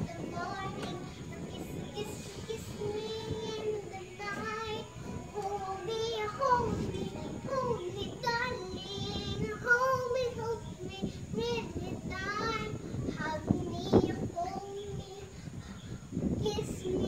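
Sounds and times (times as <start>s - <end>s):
girl singing: 0.0s - 17.0s.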